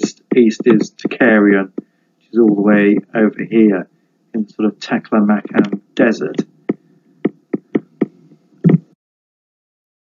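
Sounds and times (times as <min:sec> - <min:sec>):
faint low hum: 0:00.0 - 0:09.0.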